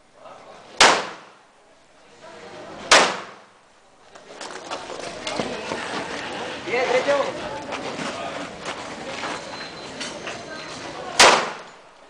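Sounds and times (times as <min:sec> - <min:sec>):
voices: 0:00.0 - 0:12.0
handgun shot: 0:00.8 - 0:01.4, 0:02.9 - 0:03.5, 0:11.2 - 0:11.7.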